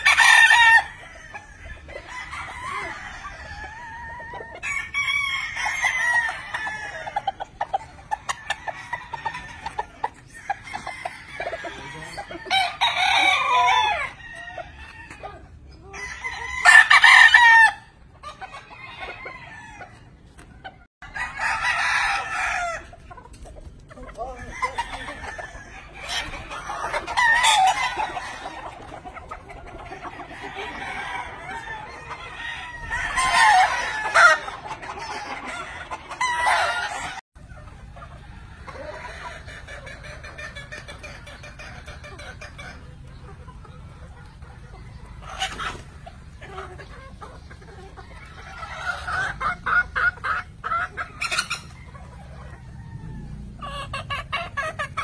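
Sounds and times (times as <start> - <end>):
chickens clucking: 0.0 - 55.0
roosters crowing: 0.0 - 55.0.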